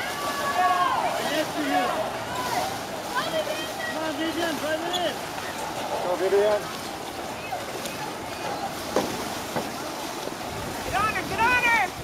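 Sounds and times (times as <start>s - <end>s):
voices shouting: 0.0s - 5.8s
water splashing: 0.0s - 12.0s.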